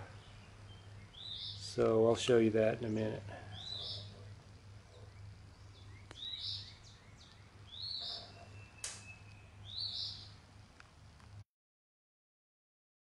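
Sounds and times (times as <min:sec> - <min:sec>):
bird chirping: 0:00.0 - 0:10.4
faint low steady hum: 0:00.0 - 0:11.4
sharp click: 0:08.8 - 0:09.4.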